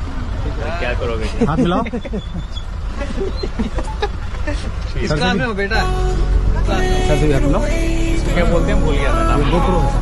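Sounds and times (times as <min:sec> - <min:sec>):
low outdoor rumble: 0:00.0 - 0:10.0
people talking: 0:00.4 - 0:02.4, 0:03.0 - 0:10.0.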